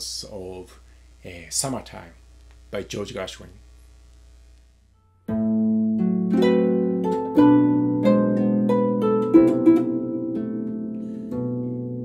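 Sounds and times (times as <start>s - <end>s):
faint low hum: 0.0s - 12.0s
harp chord ringing: 5.3s - 12.0s.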